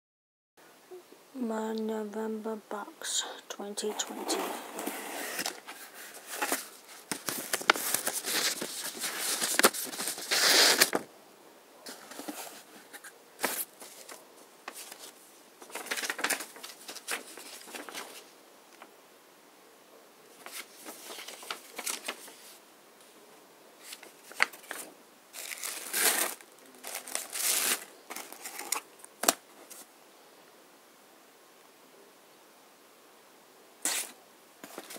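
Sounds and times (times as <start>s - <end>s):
tissue paper rustling: 4.0s - 11.0s, 11.9s - 18.3s, 20.4s - 22.6s, 23.8s - 29.9s, 33.8s - 34.9s.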